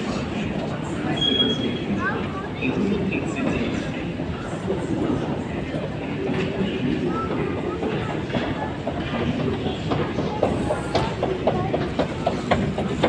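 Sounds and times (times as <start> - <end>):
escalator rumbling and clattering: 1.6 - 13.0.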